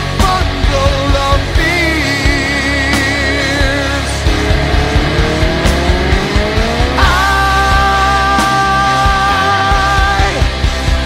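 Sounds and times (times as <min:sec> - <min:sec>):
hard rock band playing: 0:00.0 - 0:11.0
guitar note gliding upward: 0:02.7 - 0:09.6.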